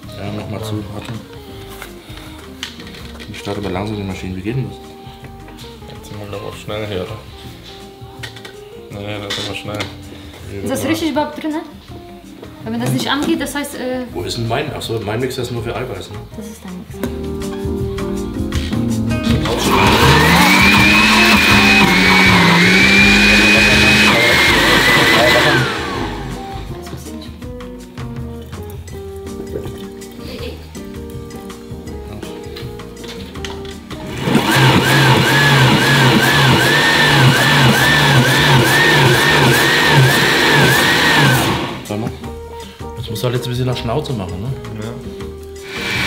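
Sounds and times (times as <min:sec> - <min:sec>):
countertop blender blending: 0:19.2 - 0:26.8, 0:33.9 - 0:42.1, 0:45.6 - 0:46.0.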